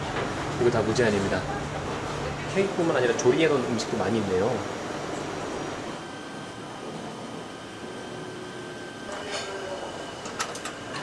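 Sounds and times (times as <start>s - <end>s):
air conditioning hum and hiss: 0.0s - 11.0s.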